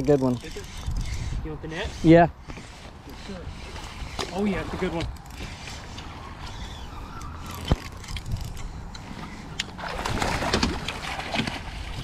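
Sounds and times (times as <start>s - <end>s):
fish splashing in water: 9.6s - 12.0s.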